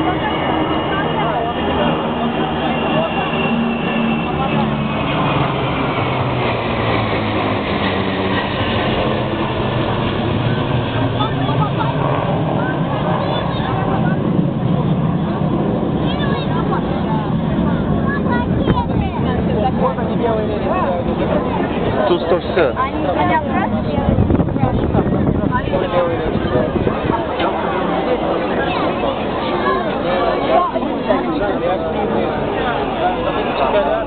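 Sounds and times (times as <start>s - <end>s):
crowd voices: 0.0s - 34.0s
jet engines passing overhead: 0.0s - 34.0s.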